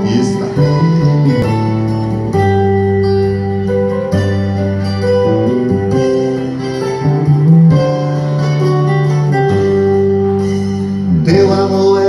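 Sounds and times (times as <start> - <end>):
guitar-like chords from speaker: 0.0 - 12.0.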